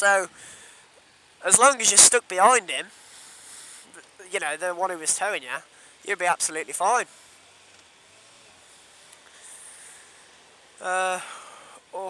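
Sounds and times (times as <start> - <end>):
wind and road noise hiss: 0.0 - 12.0.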